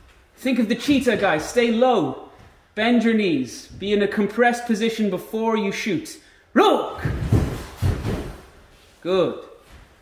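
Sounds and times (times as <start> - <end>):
feet thudding on wooden floor: 7.0 - 8.7.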